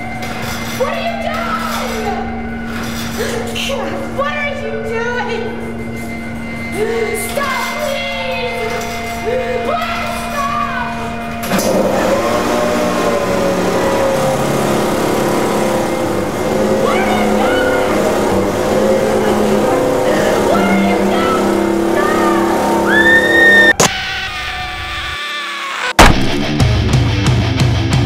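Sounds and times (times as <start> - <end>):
leaf blower engine running: 10.9 - 23.8
woman screaming: 16.7 - 24.7.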